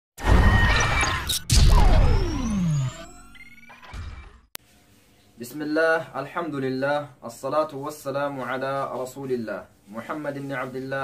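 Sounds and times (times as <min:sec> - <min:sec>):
electronic tone sweeping downward: 0:00.2 - 0:04.5.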